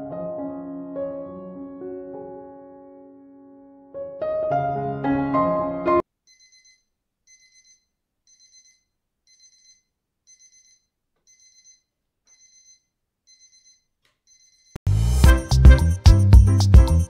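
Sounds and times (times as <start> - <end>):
timer alarm high-pitched beeps: 6.3 - 14.8.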